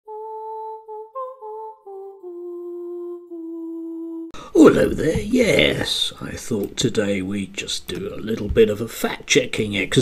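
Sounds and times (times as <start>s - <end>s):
person humming a tune: 0.0s - 4.6s.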